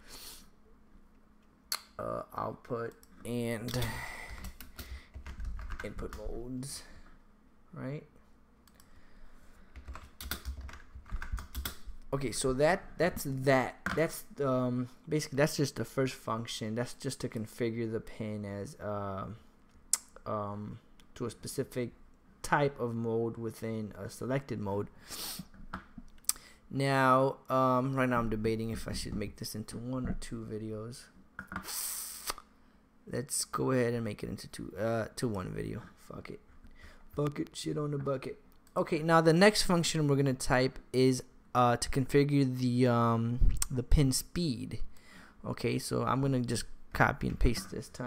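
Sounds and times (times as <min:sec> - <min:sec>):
typing on computer keyboard: 0:04.3 - 0:06.2, 0:09.8 - 0:11.9.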